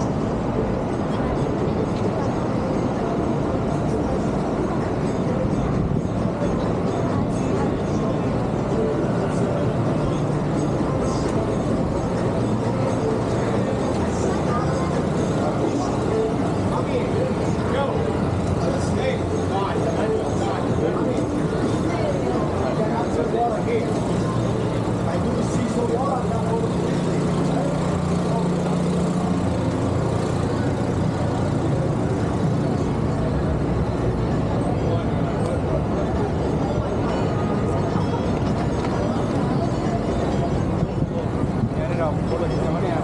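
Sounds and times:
traffic noise: 0.0s - 43.0s
voices of passers-by: 0.0s - 43.0s.

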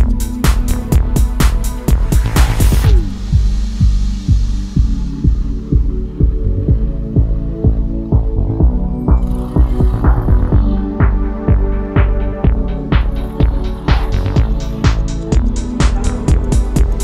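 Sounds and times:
electronic music with bass beat: 0.0s - 17.0s.

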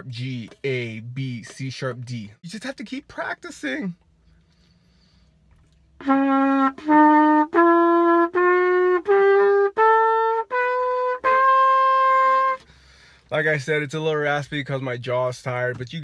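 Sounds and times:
trumpet playing a scale: 6.0s - 12.6s.

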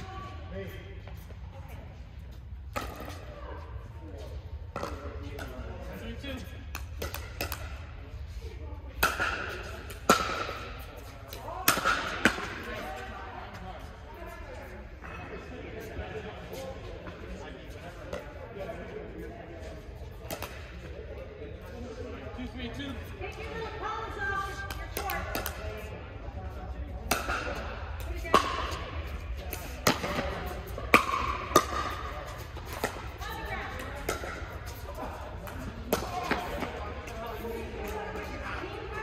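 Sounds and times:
paddles hitting plastic ball: 6.7s - 7.8s, 29.5s - 33.2s.

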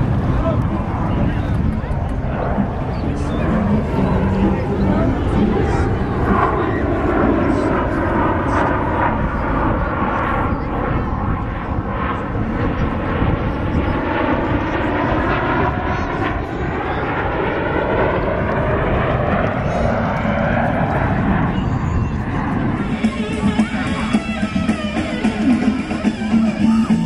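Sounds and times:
jets flying over: 0.0s - 27.0s.

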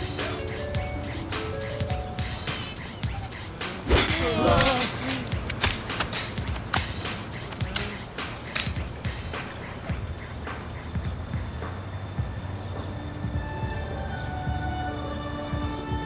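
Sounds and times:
music: 0.0s - 16.0s
person crying out: 3.9s - 5.4s.

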